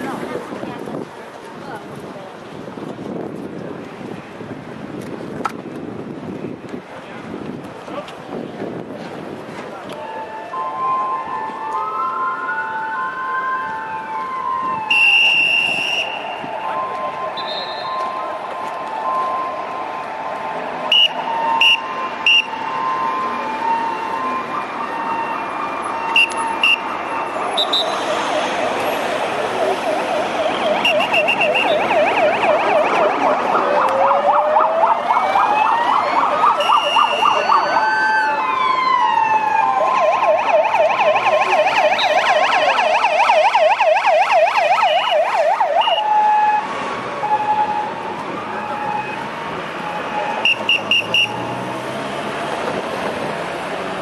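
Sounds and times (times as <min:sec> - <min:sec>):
police sirens wailing and yelping: 0:09.8 - 0:54.0
short high siren blips: 0:29.9 - 0:38.3.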